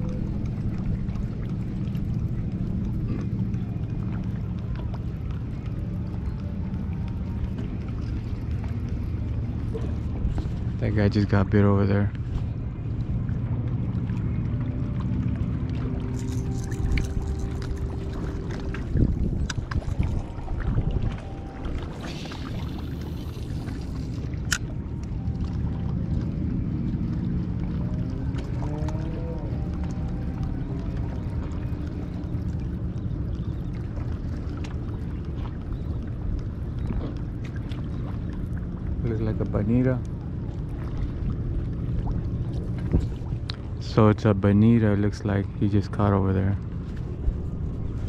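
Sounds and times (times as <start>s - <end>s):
faint motor hum: 0.0s - 48.0s
low rumble of wind and water: 0.0s - 48.0s.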